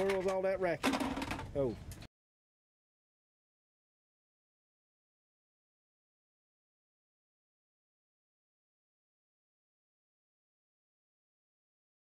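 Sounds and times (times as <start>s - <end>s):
outdoor background noise: 0.0s - 2.1s.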